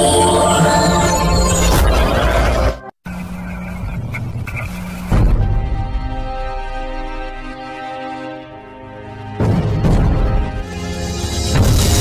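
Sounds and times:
music: 0.0s - 2.9s, 5.0s - 12.0s.

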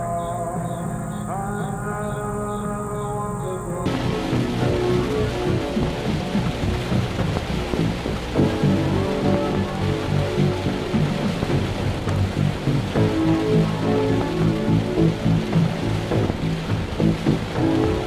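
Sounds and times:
heavy rain: 0.0s - 18.0s
slow music of held notes: 0.0s - 18.0s.

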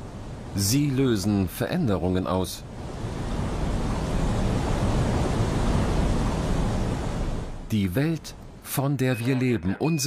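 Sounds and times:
floodwater rushing: 0.4s - 8.1s.

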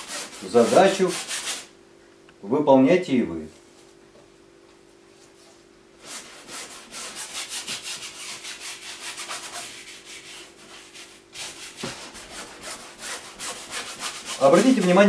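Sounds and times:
bristle brush scrubbing canvas: 0.0s - 1.7s, 6.0s - 15.0s.

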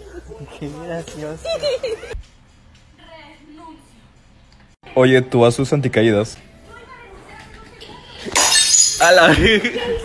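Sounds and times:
glass shattering: 8.3s - 9.3s.

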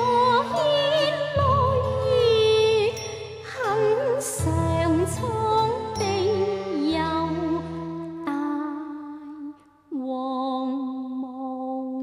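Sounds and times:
opera singing: 0.0s - 12.0s.

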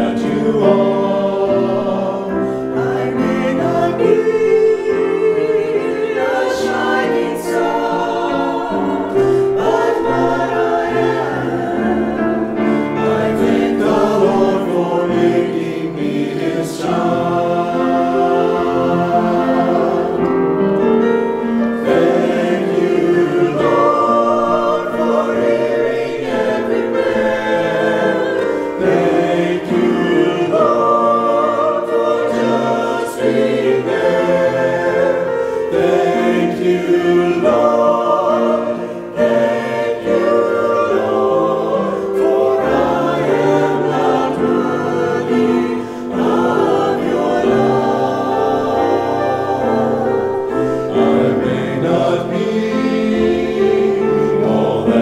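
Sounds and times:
church choir singing: 0.0s - 55.0s.

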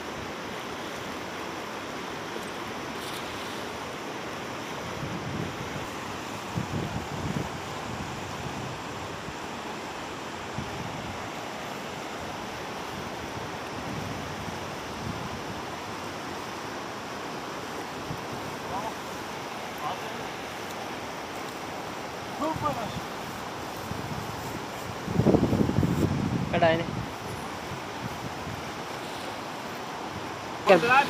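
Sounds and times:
river rushing over rocks: 0.0s - 31.0s
wind buffeting microphone: 4.8s - 9.4s, 21.8s - 28.9s.

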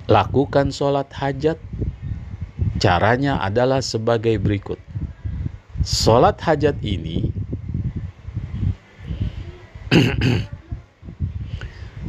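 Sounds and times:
man clearing his throat: 9.9s - 10.5s.

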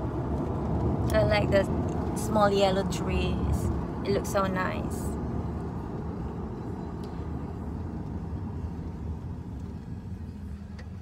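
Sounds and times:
car road and engine noise: 0.0s - 11.0s.

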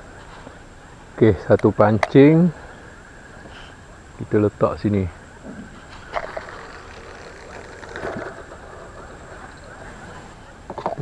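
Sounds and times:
river flowing: 5.9s - 10.7s.

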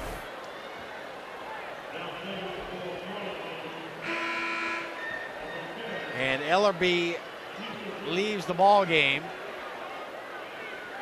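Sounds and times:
crowd noise: 0.0s - 11.0s
arena horn blast: 4.0s - 5.0s.

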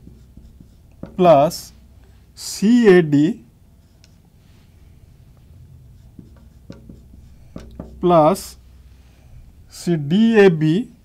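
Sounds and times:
marker writing on whiteboard: 0.0s - 1.9s, 2.6s - 4.4s, 5.8s - 8.7s.

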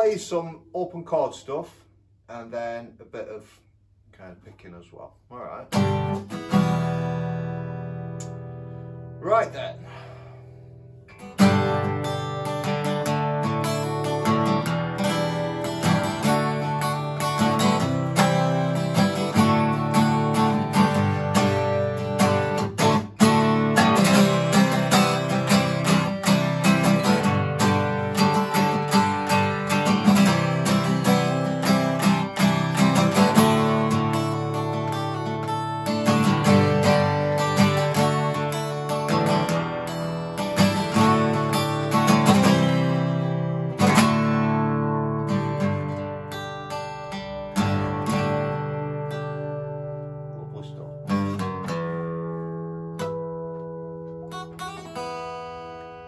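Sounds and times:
acoustic guitar open chords: 0.0s - 56.0s.

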